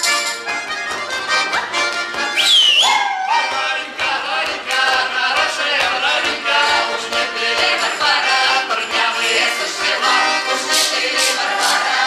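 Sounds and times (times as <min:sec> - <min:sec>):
accordion playing folk dance tune: 0:00.0 - 0:12.0
high voice whooping: 0:02.6 - 0:03.6.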